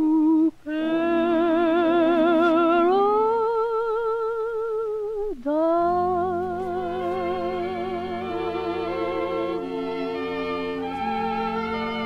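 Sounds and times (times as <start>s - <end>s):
woman singing wordless line: 0.0s - 12.0s
instrumental accompaniment: 6.0s - 12.0s.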